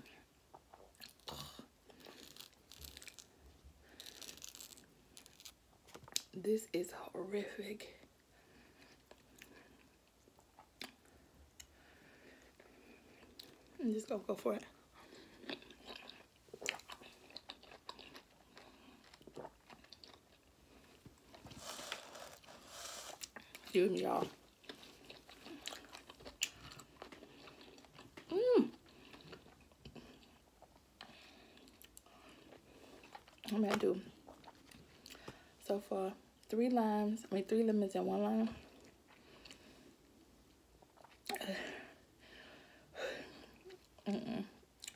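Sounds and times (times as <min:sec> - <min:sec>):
person chewing: 0:00.5 - 0:03.4, 0:04.0 - 0:06.3, 0:08.7 - 0:11.8, 0:15.0 - 0:23.7, 0:24.3 - 0:33.5, 0:34.2 - 0:35.3, 0:40.8 - 0:41.4.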